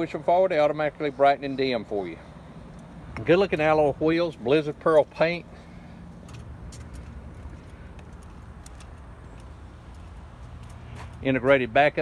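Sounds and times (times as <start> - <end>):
low outdoor rumble: 0.0 - 12.0
footsteps on asphalt: 1.8 - 12.0.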